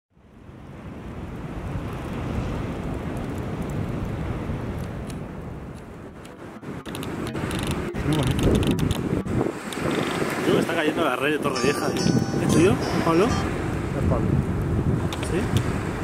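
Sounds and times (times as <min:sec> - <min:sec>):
wind buffeting microphone: 0:00.3 - 0:16.0
short crackles: 0:06.8 - 0:09.0.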